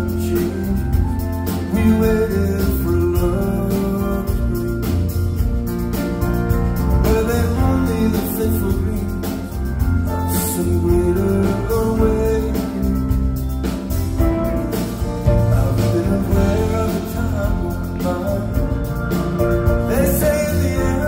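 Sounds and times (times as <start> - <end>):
man singing: 0.0 - 5.6, 6.9 - 21.0
bass: 0.0 - 21.0
live rock band with electric guitar: 0.0 - 21.0.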